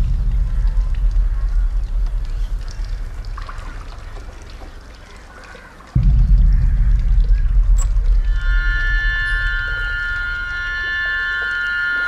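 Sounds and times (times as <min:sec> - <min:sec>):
deep low rumble: 0:00.0 - 0:04.6, 0:06.0 - 0:10.9.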